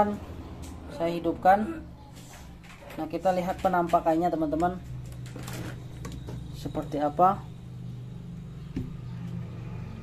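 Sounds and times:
low engine-like hum: 4.8 - 10.0.

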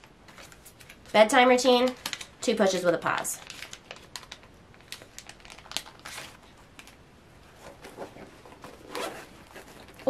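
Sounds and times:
pouch crinkling and rustling: 3.1 - 7.0, 7.6 - 10.0.

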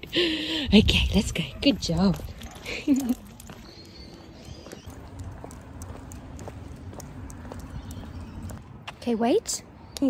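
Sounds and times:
wind rumble: 0.0 - 2.5
footsteps on concrete: 1.6 - 10.0.

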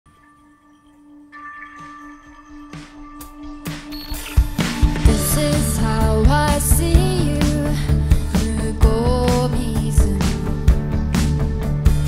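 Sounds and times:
drum hit: 3.7 - 7.2.

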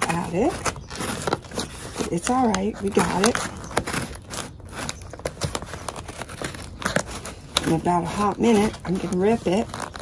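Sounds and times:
scissors cutting cardboard: 0.0 - 10.0.

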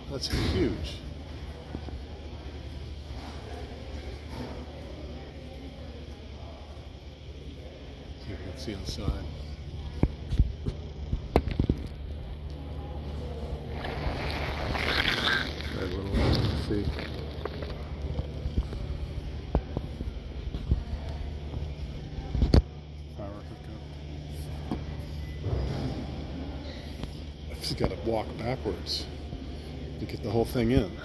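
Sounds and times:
low hum: 0.8 - 28.0.

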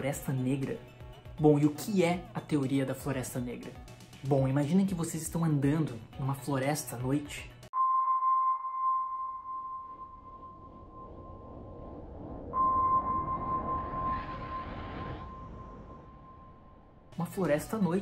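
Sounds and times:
high sonar-like ping: 7.8 - 17.1
low dark rumble: 10.0 - 17.2.

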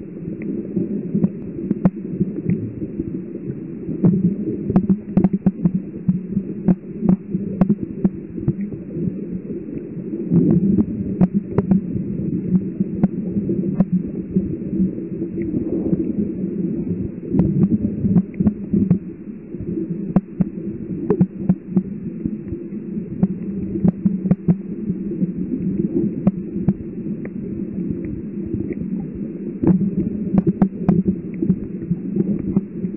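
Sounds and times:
low underwater rumble and hum: 0.0 - 32.9
sharp underwater clicks: 1.2 - 2.6, 4.0 - 8.8, 9.7 - 11.8, 12.9 - 14.0, 17.3 - 19.2, 20.1 - 24.7, 26.2 - 27.4, 28.0 - 32.9.

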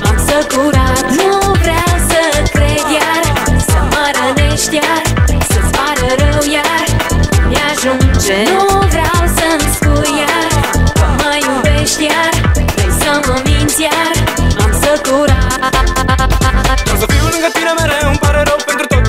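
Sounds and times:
pop dance music: 0.0 - 19.0.

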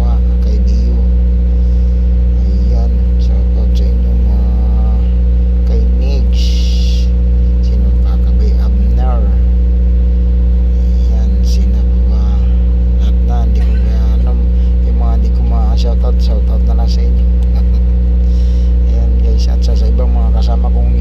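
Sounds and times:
voices talking: 0.0 - 1.2, 2.3 - 9.6, 10.8 - 21.0
low motor drone: 0.0 - 21.0.

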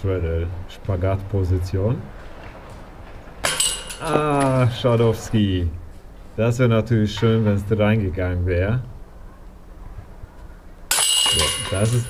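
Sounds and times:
disc golf putt clanking metal basket: 3.0 - 4.6, 10.9 - 12.0.

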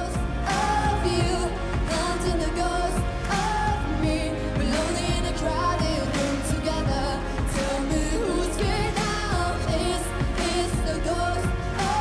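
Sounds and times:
woman singing pop song: 0.0 - 12.0.

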